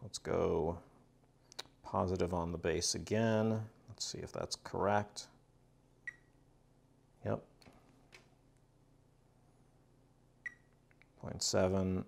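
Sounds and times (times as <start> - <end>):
multimeter beep: 6.0 - 6.4, 10.4 - 10.7.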